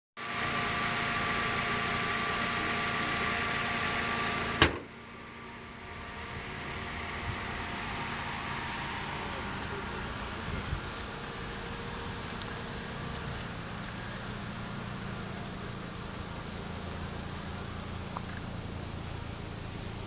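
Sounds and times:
car engine idling: 0.2 - 20.0
car bonnet slamming shut: 4.4 - 5.0.

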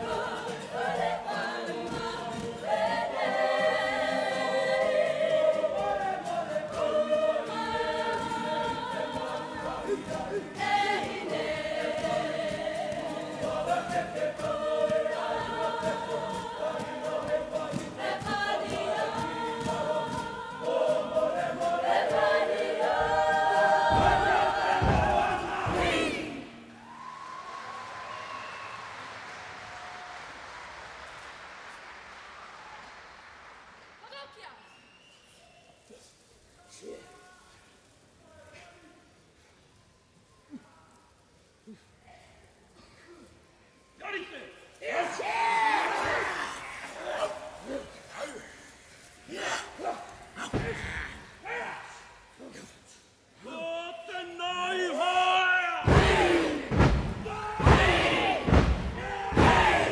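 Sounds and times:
acoustic guitar: 0.0 - 26.8
group singing in unison: 0.0 - 26.8, 55.8 - 59.9.

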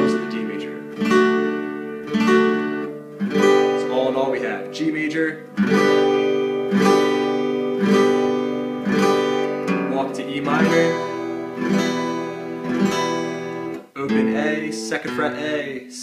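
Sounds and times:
acoustic guitar strumming chords: 0.0 - 16.0.

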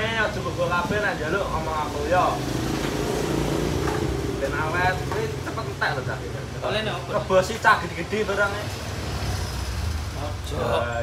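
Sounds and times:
street traffic: 0.0 - 11.0.

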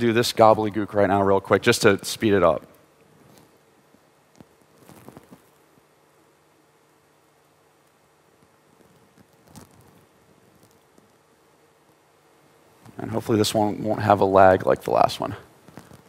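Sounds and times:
faint low room hum: 0.0 - 16.0.

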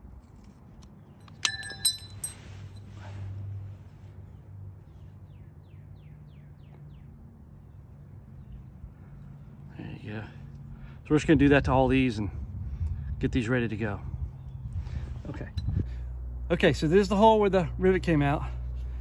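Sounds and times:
low steady hum: 0.0 - 5.2, 7.0 - 19.0
bird chirping: 4.8 - 8.8.

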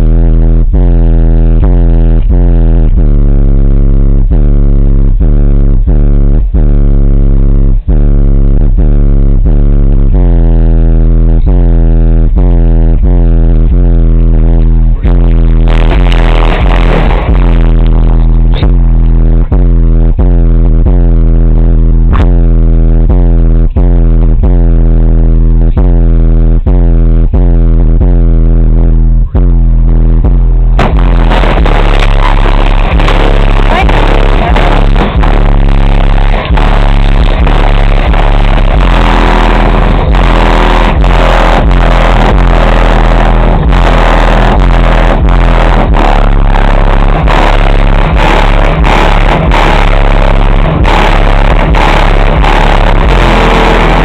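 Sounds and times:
loud bass-heavy music: 0.0 - 54.0.

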